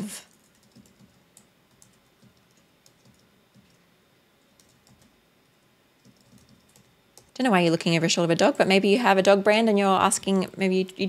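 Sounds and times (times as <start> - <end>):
typing on computer keyboard: 0.3 - 3.8, 4.4 - 5.2, 6.0 - 7.4.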